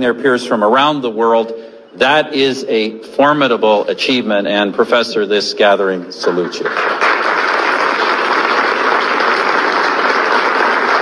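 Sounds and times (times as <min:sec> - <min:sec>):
large audience applauding: 0:06.2 - 0:11.0.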